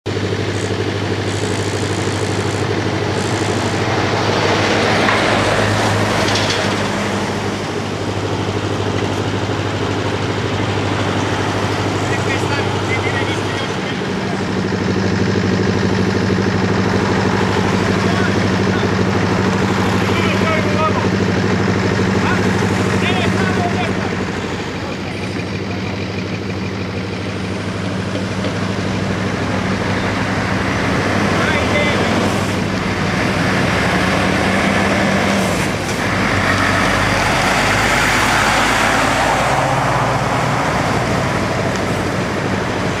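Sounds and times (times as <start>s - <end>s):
motorway traffic hum: 0.0s - 43.0s.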